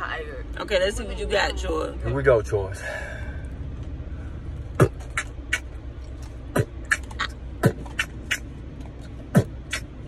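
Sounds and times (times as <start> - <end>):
low steady car hum: 0.0 - 10.0
person beatboxing: 4.8 - 5.7, 6.5 - 8.5, 9.3 - 10.0.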